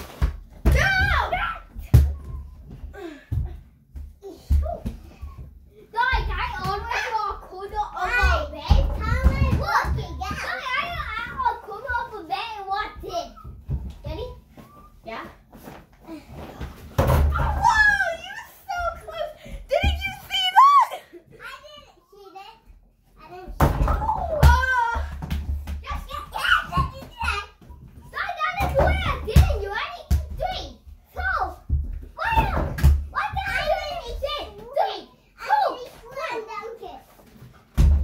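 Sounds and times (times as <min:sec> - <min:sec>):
child calling and chattering: 0:17.4 - 0:25.2, 0:25.8 - 0:31.6.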